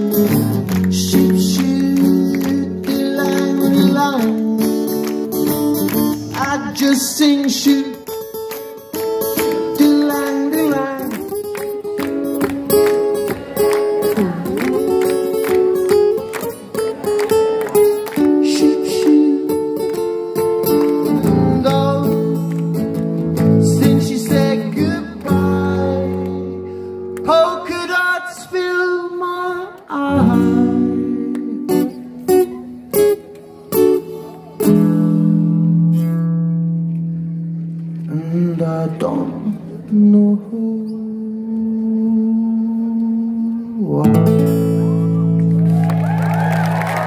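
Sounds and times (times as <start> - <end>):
acoustic guitar strumming: 0.0 - 38.4, 41.1 - 45.6.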